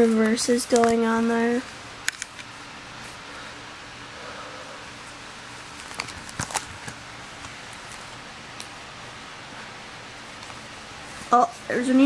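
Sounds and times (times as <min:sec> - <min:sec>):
plastic pages crinkling: 0:05.7 - 0:08.2.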